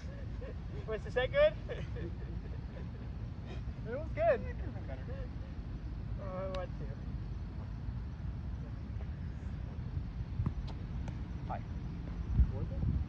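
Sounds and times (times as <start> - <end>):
wind rumble on microphone: 7.2 - 13.0.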